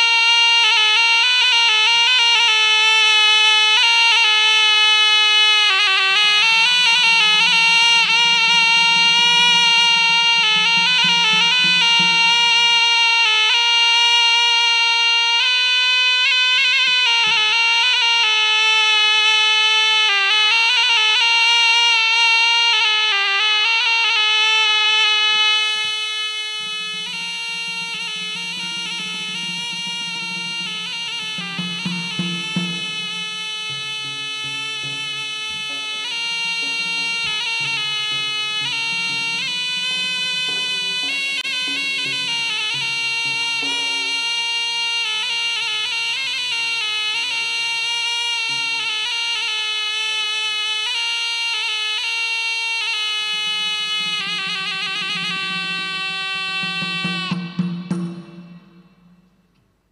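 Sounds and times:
shrill wind instrument melody: 0.0 - 57.6
frame drums: 5.6 - 14.7, 25.8 - 49.4, 53.3 - 59.8.

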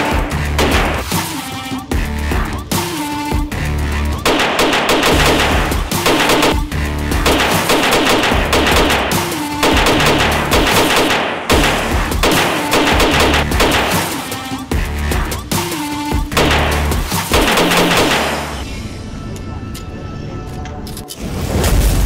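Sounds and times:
music with heavy bass beat: 0.0 - 18.7
pistol shots: 4.2 - 14.3, 16.3 - 18.6.

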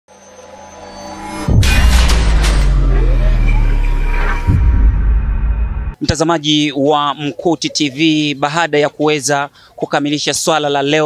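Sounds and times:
deep booming rumble: 1.4 - 6.0
crashing hit of shattering debris: 1.5 - 4.6.

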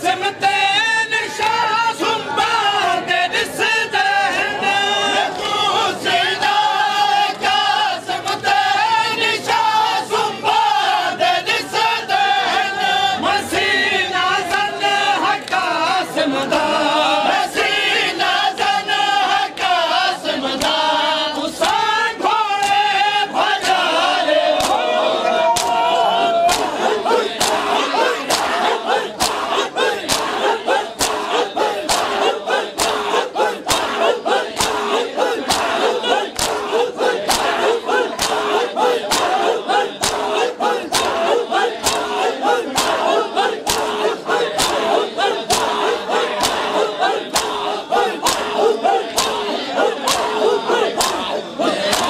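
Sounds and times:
crowd chanting in unison: 0.0 - 52.0
hands slapping chests: 22.6 - 22.8, 24.6 - 24.8, 25.6 - 25.8, 26.5 - 52.0.

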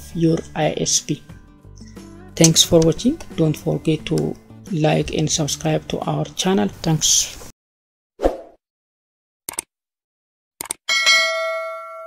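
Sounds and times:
quick double clicks: 9.5 - 9.7, 10.6 - 10.8
bell-like ding: 10.9 - 12.0.

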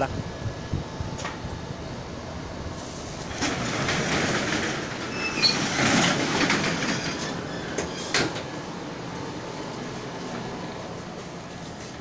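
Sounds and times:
metal shutter door rattling and squealing: 3.2 - 8.6.

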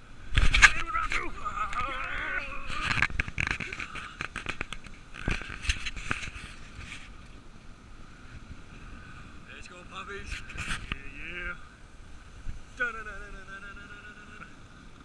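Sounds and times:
wavering voice-like call: 0.8 - 3.1.

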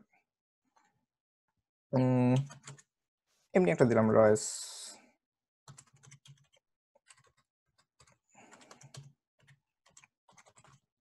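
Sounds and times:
faint keyboard typing: 2.0 - 2.9, 5.7 - 10.9.

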